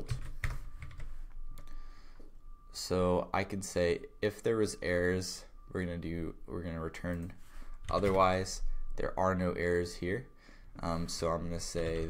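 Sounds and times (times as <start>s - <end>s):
typing on computer keyboard: 0.0s - 1.1s, 7.1s - 8.3s.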